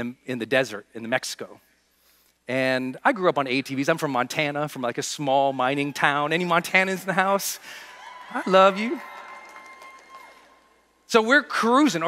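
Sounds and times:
scattered claps and cheers: 5.8 - 10.9.

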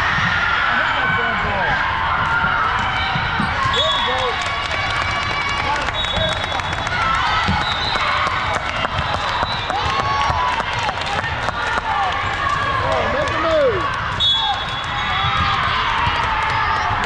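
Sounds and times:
high whistle: 3.7 - 4.3, 5.9 - 6.6, 7.5 - 8.1, 14.2 - 15.1
balls thudding: 7.3 - 11.3.

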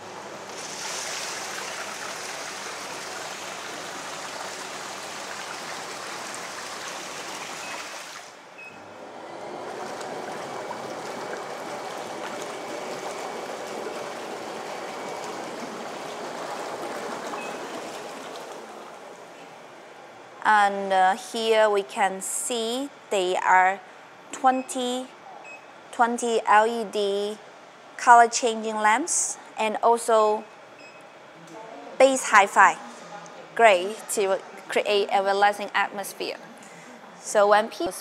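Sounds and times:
bathtub water jets churning: 0.0 - 8.4, 9.0 - 19.3.

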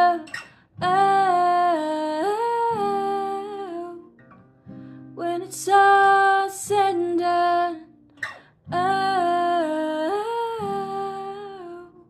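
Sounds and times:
acoustic guitar: 0.0 - 12.0.

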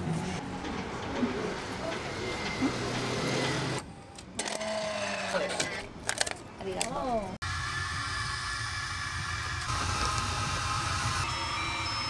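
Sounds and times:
shop background noise: 0.0 - 7.4
kiosk mechanical hum: 0.0 - 12.0.

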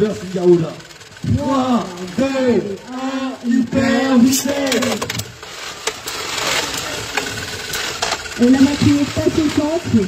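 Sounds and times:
motor hum: 0.0 - 10.0
spinning tops whirring and scraping: 0.0 - 10.0.

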